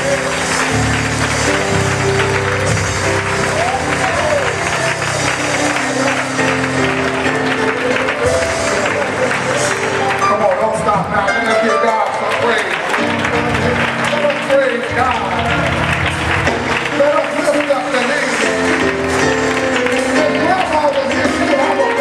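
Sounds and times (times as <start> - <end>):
congregation clapping: 0.0 - 22.0
congregation voices: 0.0 - 22.0
instrumental church music: 0.0 - 22.0.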